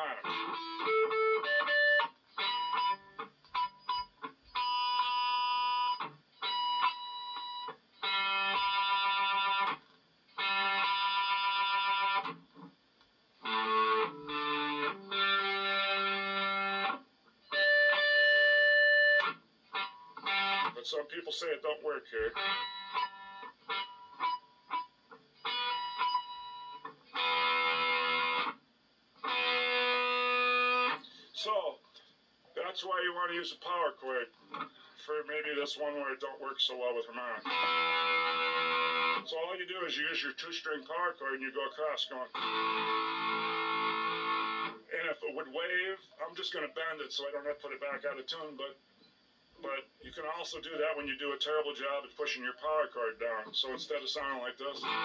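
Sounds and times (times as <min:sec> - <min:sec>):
electric guitar power chords: 0:00.0 - 0:12.8, 0:13.4 - 0:20.8, 0:22.3 - 0:28.6, 0:29.2 - 0:31.2, 0:37.4 - 0:39.3, 0:42.3 - 0:44.9, 0:54.8 - 0:55.0.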